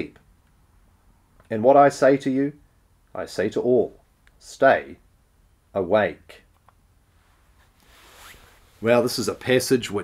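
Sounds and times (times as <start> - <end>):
soft hiss: 0.0 - 10.0
man speaking: 1.5 - 5.0, 8.8 - 10.0.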